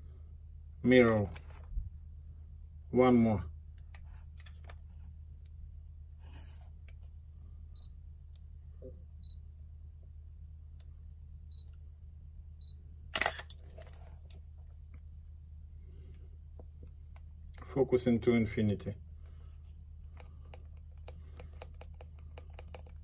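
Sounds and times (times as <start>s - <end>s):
camera focus beeps: 12.6s - 13.5s
camera shutter firing: 13.2s - 13.9s.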